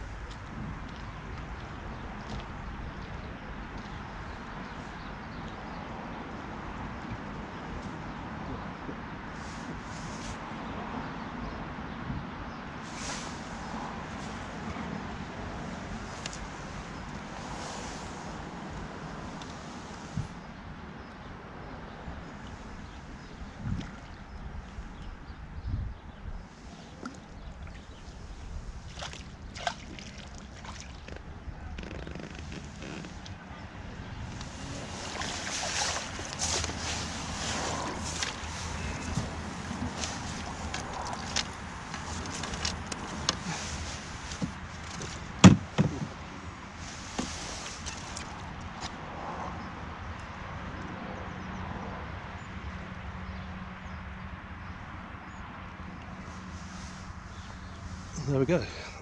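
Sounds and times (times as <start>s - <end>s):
wind buffeting microphone: 0.0s - 46.7s
fish splashing in water: 28.8s - 31.1s, 34.5s - 43.6s.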